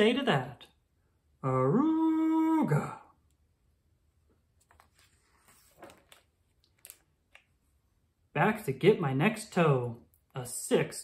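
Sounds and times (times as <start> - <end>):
book page turning: 4.6 - 7.3.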